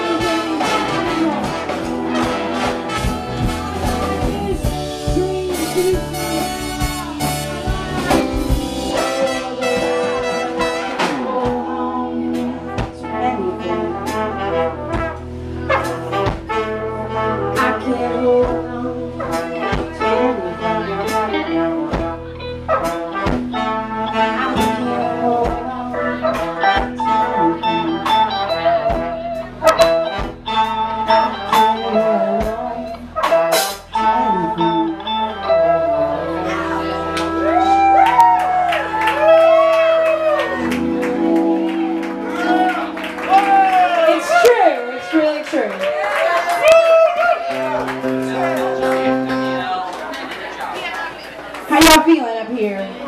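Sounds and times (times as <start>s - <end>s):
horn section: 0.0s - 50.4s
drums: 0.0s - 52.1s
bass: 0.0s - 53.0s
electric guitar: 0.0s - 53.0s.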